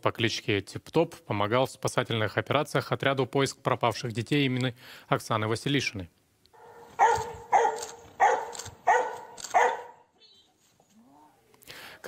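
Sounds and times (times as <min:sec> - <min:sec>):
dog barking: 0:06.6 - 0:10.1.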